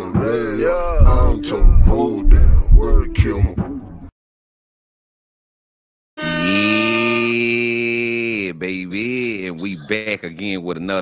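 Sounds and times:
man speaking: 0.0 - 3.6, 7.2 - 11.0
man's long drawn-out call: 6.2 - 8.2.

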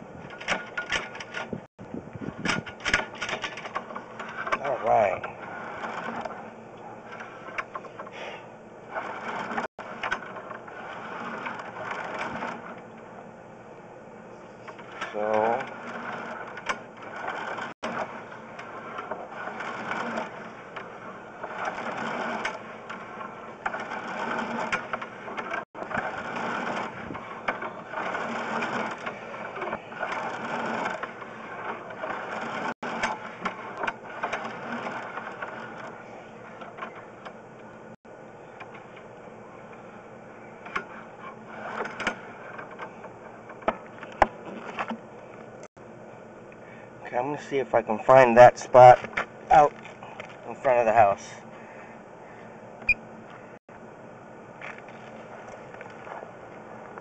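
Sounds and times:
push cable mechanical rattling: 0.1 - 13.2, 14.6 - 37.7, 38.4 - 45.7.

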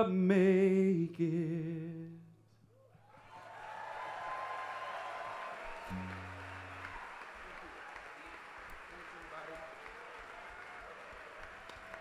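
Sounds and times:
crowd noise in a large hall: 2.8 - 12.0
faint audience applause: 3.1 - 12.0.

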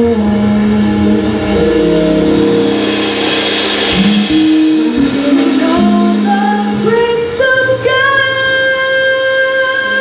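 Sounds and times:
live band music: 0.0 - 10.0
person singing: 4.3 - 10.0.

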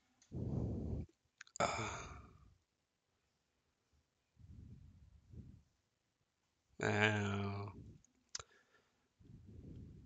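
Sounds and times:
man sighing: 1.6 - 2.5.

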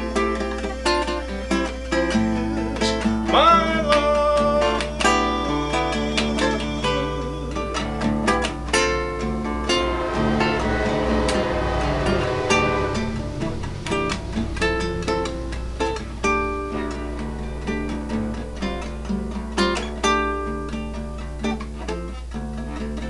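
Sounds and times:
fingerstyle acoustic guitar: 0.0 - 9.8, 13.9 - 23.0.

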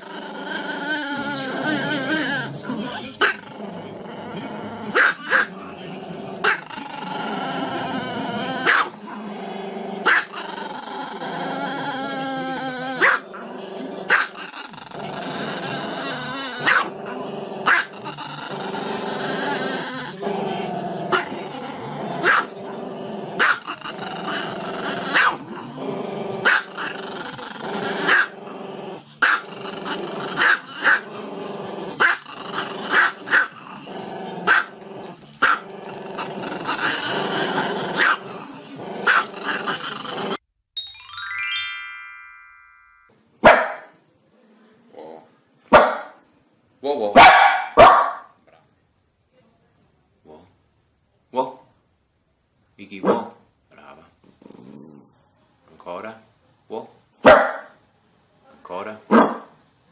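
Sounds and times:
dog yipping: 47.2 - 48.2.

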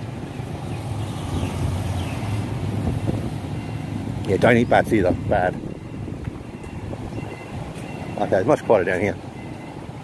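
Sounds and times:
motorbikes passing: 0.0 - 10.0.

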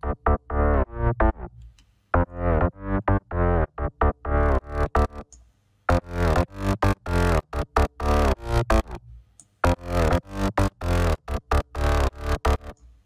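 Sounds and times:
layered synth bassline: 0.0 - 1.6, 2.2 - 5.3, 5.9 - 9.0, 9.6 - 12.8.

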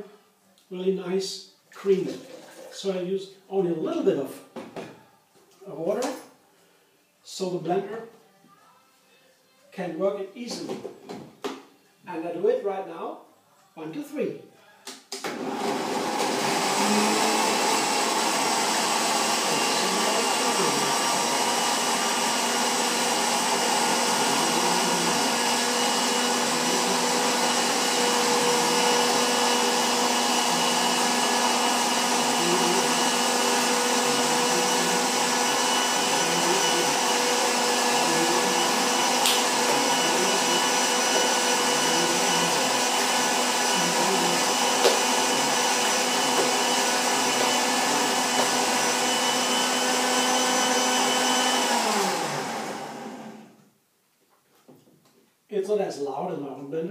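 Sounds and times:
blender running: 15.2 - 53.6.

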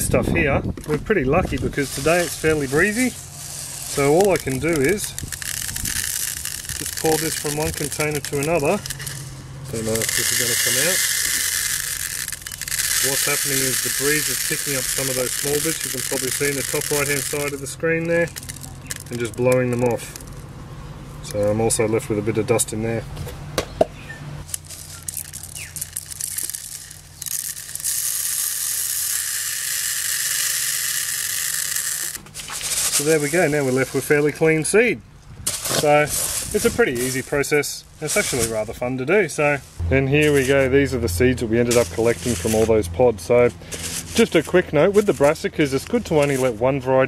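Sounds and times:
seeds pattering on plastic: 1.4 - 20.4, 24.4 - 34.1.

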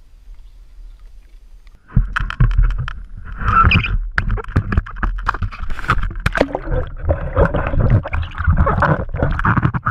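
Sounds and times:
water splashing and gurgling: 1.9 - 9.9
low underwater rumble: 5.9 - 9.8.

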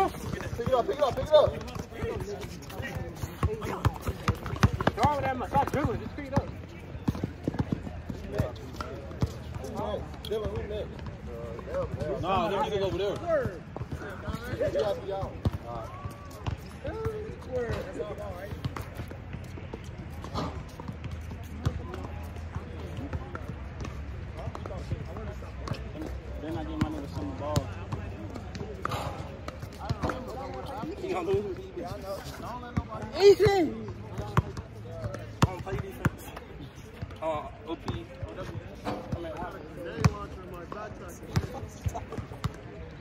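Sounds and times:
players' voices: 0.0 - 43.0.

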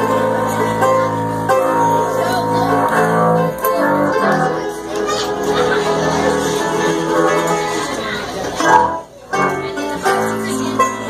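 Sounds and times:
acoustic guitar: 0.0 - 11.0
banjo: 0.0 - 11.0
mandolin: 0.0 - 11.0
upright bass: 0.0 - 11.0.

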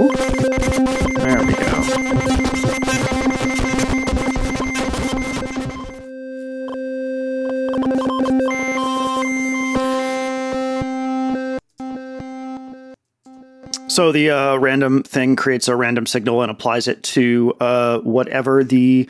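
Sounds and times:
rapid synthesizer clicks: 0.0 - 6.1, 7.5 - 14.0
held synthesizer note: 0.0 - 7.0.

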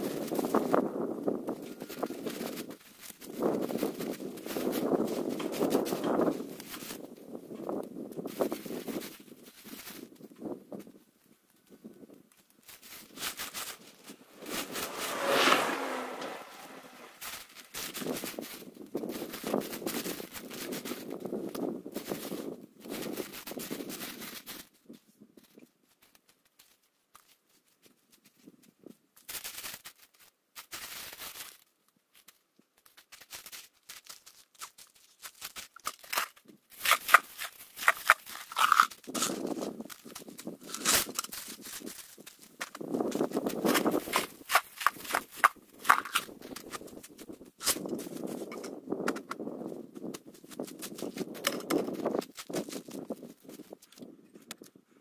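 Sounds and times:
gravel crunching and rattling: 0.0 - 55.0.

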